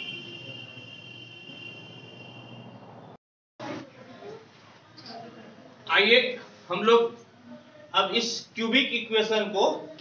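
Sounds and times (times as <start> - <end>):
faint room noise: 3.6 - 10.0.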